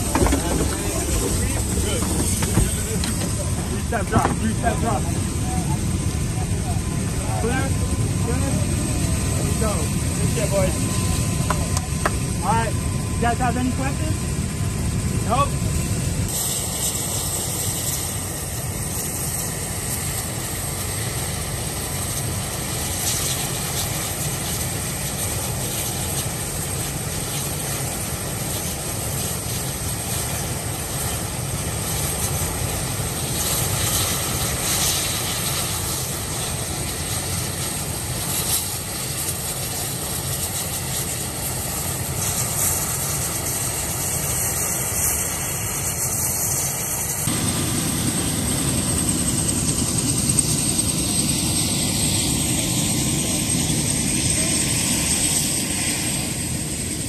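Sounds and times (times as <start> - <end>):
helicopter engine and rotor noise: 0.0 - 57.0.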